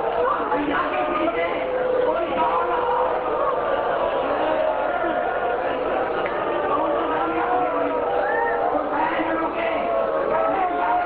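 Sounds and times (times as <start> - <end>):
man chanting over loudspeakers: 0.0 - 11.0.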